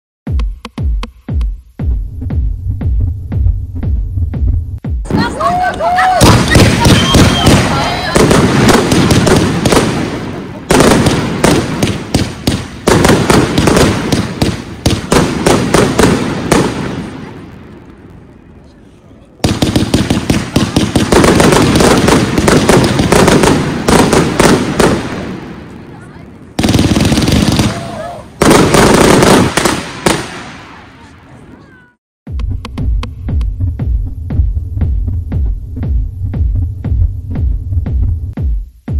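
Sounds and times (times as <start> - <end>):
loud salute bangs: 5.0 - 17.4, 19.4 - 25.8, 26.4 - 31.1
echoes of firework bangs: 5.0 - 31.9
firework shots firing: 5.1 - 18.6, 19.4 - 31.7.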